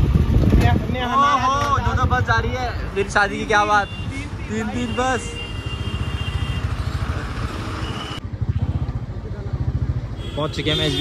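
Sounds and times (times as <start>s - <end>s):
motorcycle engine running: 0.0s - 3.0s, 8.2s - 11.0s
street traffic noise: 0.0s - 11.0s.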